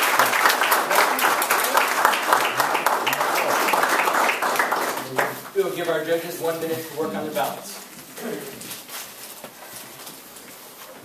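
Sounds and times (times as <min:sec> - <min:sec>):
audience rustling: 0:00.0 - 0:11.0.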